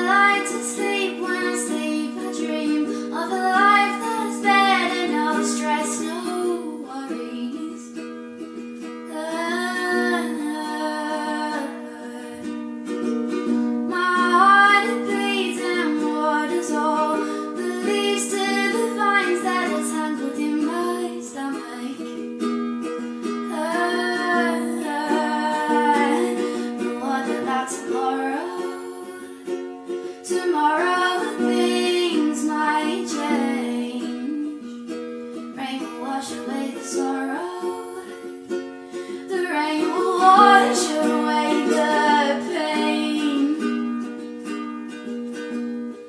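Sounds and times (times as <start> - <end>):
woman singing: 0.0 - 8.0, 9.1 - 12.8, 13.9 - 22.2, 23.4 - 34.8, 35.6 - 44.0
ukulele chords: 0.0 - 46.0.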